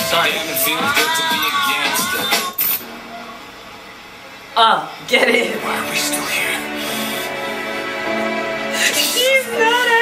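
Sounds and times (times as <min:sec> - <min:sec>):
woman's voice: 0:04.6 - 0:06.0.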